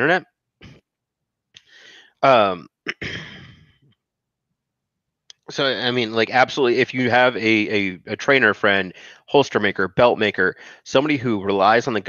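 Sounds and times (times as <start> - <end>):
man sighing: 1.6 - 3.6, 8.9 - 9.2, 10.6 - 10.8.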